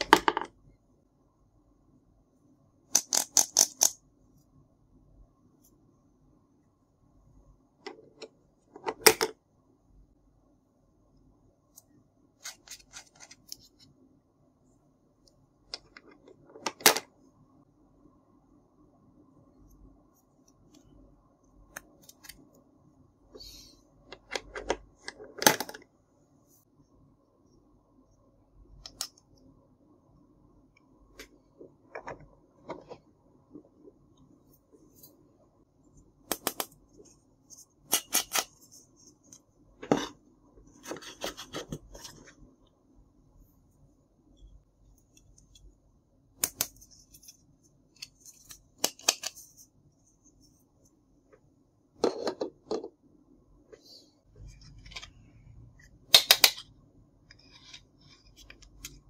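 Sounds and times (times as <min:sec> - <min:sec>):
plastic toy clicking together: 0:02.9 - 0:04.0.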